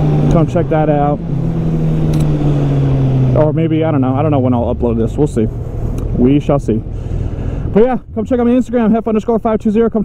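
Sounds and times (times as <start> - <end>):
motorcycle engine running: 0.0 - 9.2.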